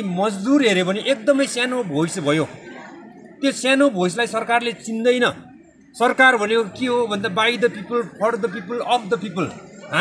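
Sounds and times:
man speaking: 3.4 - 10.0.

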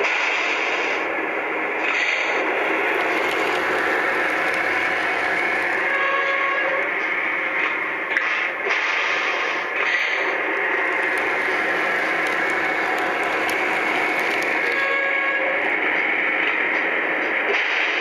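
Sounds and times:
model train motor whirring: 1.8 - 6.8, 10.2 - 15.8.

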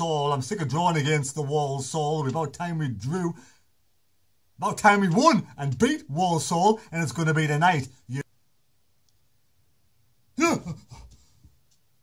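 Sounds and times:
man shouting: 10.4 - 11.0.

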